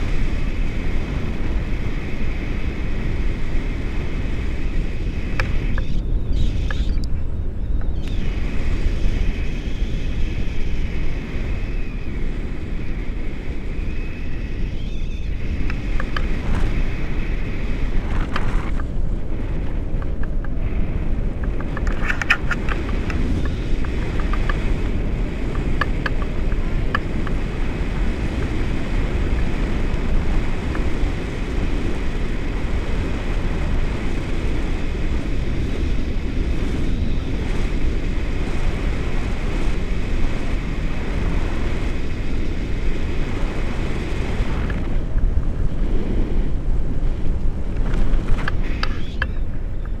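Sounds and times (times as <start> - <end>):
wind buffeting microphone: 0.0 - 50.0.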